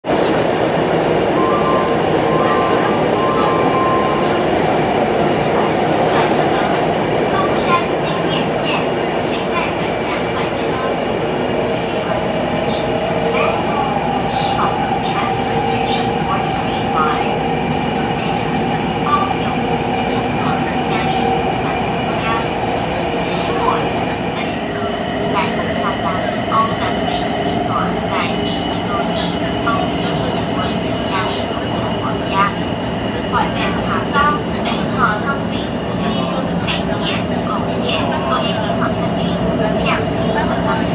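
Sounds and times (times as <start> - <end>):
train rumbling: 0.0 - 40.9.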